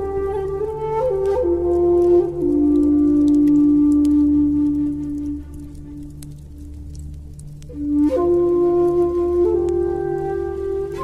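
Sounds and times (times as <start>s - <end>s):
flute holding long note: 0.0s - 6.8s, 7.6s - 11.0s.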